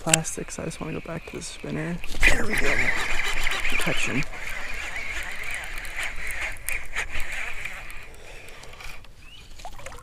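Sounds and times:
fishing reel whirring: 0.3s - 9.5s
sharp clicks: 2.0s - 9.2s.

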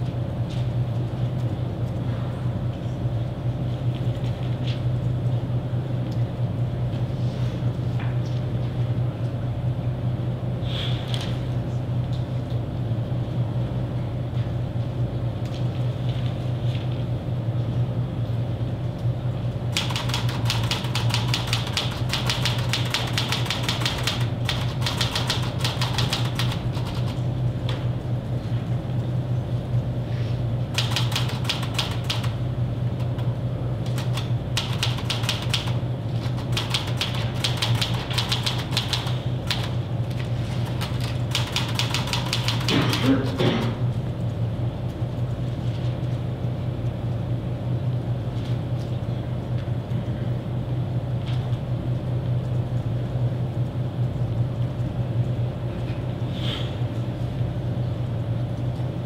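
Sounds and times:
steady low hum: 0.0s - 59.0s
rapid keyboard typing: 19.7s - 27.3s, 30.7s - 32.4s, 33.0s - 43.3s.

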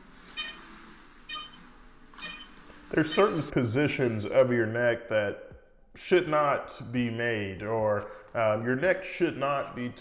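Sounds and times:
patient monitor beeping: 0.2s - 3.6s.

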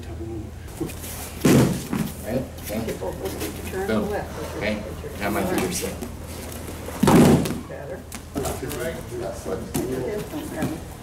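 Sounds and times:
body landing on mat thud: 1.4s - 2.2s, 7.0s - 7.6s.

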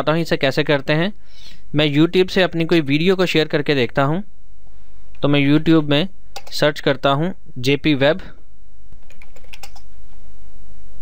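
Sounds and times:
steady low hum: 0.0s - 11.0s
keyboard typing: 9.0s - 9.9s.

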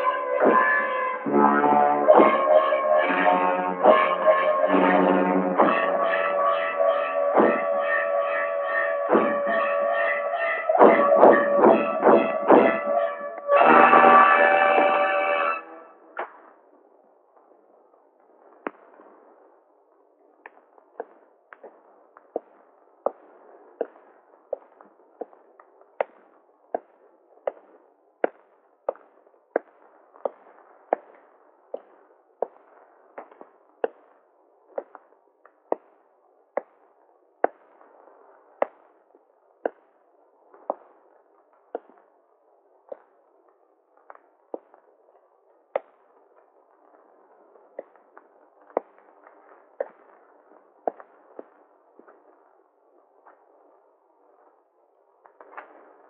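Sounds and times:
dramatic orchestral chords: 1.3s - 7.7s, 10.9s - 15.7s
heavy percussive hits: 9.1s - 9.6s, 10.8s - 13.0s
sharp knocks: 9.1s - 9.6s, 10.8s - 12.9s.

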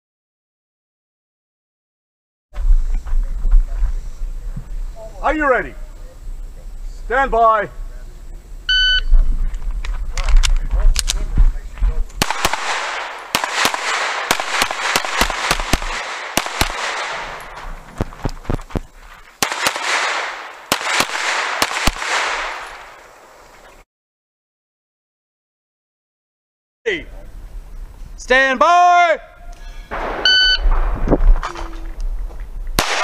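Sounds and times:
shot timer beep: 8.7s - 9.1s, 30.2s - 30.6s
handgun shots echoing: 12.2s - 17.6s, 19.4s - 23.2s, 32.8s - 33.0s.

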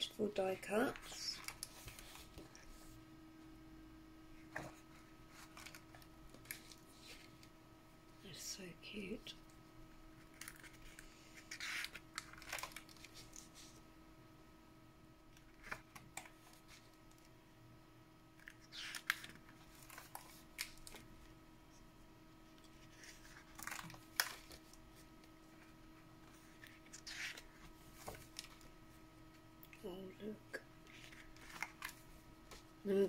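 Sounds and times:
paper pages rustling: 0.8s - 3.0s, 4.4s - 7.5s, 10.2s - 13.8s, 18.4s - 21.1s, 22.5s - 28.7s, 30.8s - 32.7s.

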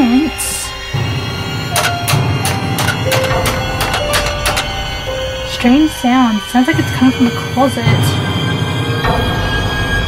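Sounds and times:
background music: 0.0s - 10.0s
rapid knocks inside closet: 1.8s - 5.0s.

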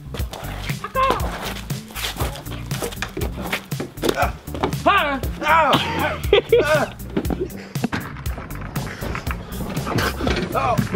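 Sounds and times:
music with beat and bass line: 0.0s - 10.9s.

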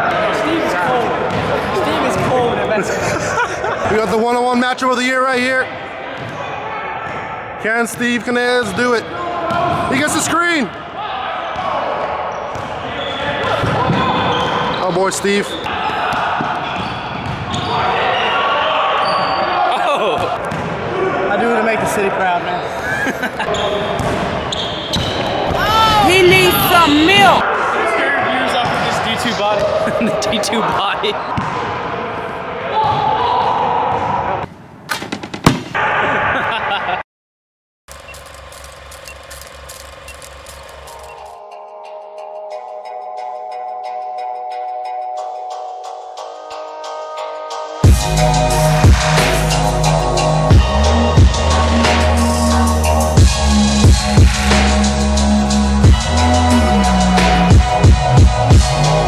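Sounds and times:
players' voices: 0.0s - 34.4s
background music with low beat: 47.8s - 59.0s.

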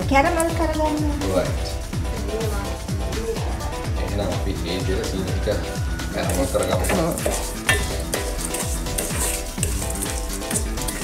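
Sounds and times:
background music with beat: 0.0s - 11.0s
mixture sizzling: 5.9s - 11.0s
wooden spoon scraping pan: 6.3s - 11.0s
spoon knocking against pan: 6.7s - 11.0s.

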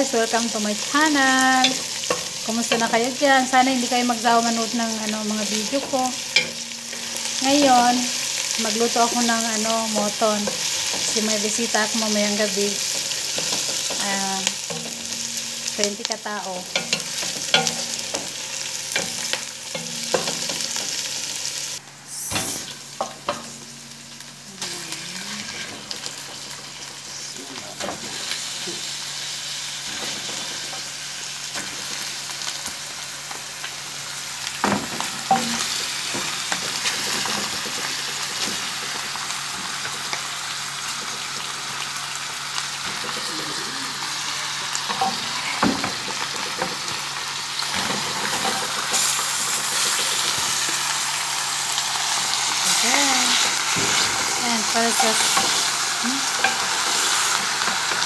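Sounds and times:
onions sizzling in oil: 0.0s - 58.0s.

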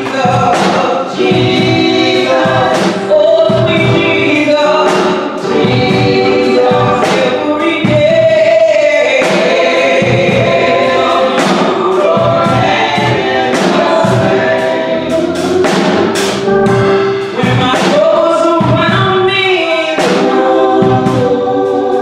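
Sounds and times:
instrumental accompaniment with beat: 0.0s - 22.0s
women singing gospel: 0.0s - 22.0s.

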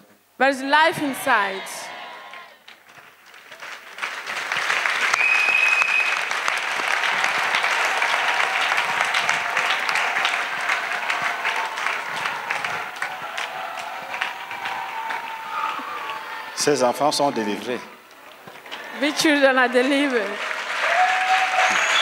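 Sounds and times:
congregation clapping: 0.8s - 22.0s.

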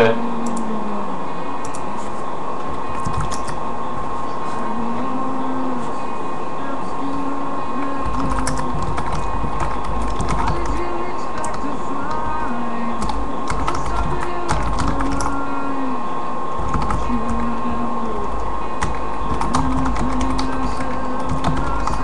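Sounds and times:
high-pitched hum: 0.0s - 22.0s
computer keyboard typing: 3.0s - 3.6s, 8.0s - 12.2s, 13.0s - 15.4s, 16.6s - 17.6s, 18.8s - 22.0s.

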